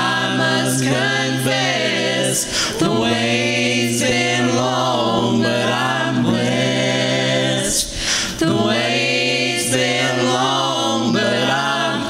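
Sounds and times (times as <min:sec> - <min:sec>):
gospel group singing a chord: 0:00.0 - 0:12.0.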